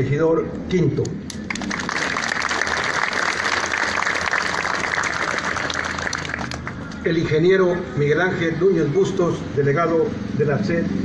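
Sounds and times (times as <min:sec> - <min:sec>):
crowd applauding: 0:01.3 - 0:07.0.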